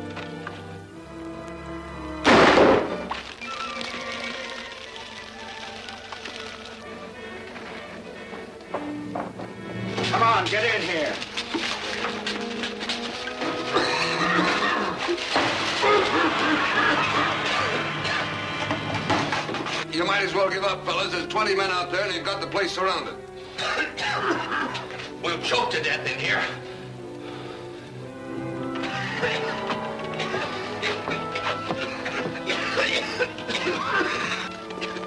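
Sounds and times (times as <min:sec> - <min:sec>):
dramatic film score: 0:00.0 - 0:35.0
gunshot: 0:02.2 - 0:03.1
voices under music: 0:10.0 - 0:11.4, 0:19.8 - 0:24.1, 0:25.0 - 0:27.7.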